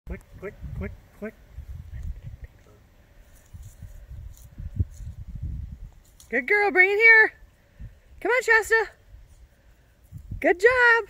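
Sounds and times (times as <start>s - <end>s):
wind buffeting microphone: 0.1s - 6.1s, 10.1s - 11.0s.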